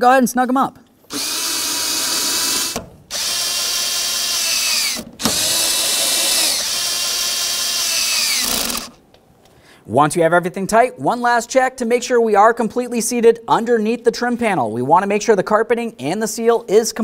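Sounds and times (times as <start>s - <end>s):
cordless drill motor whine: 1.1s - 9.0s.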